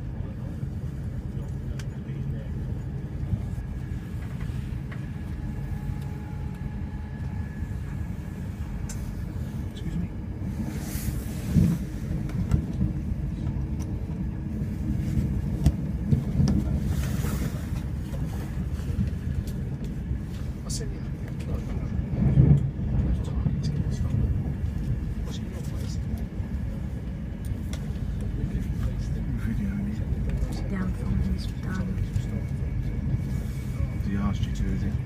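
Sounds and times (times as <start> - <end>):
train rumble inside carriage: 0.0 - 35.0.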